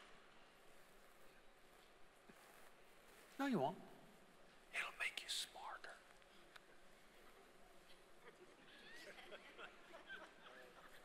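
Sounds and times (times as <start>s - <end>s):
whisper with hissing s: 3.2s - 8.1s.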